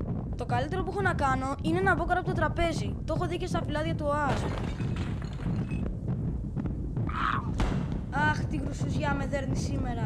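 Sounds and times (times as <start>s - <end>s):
earthquake rumbling: 0.0s - 10.0s.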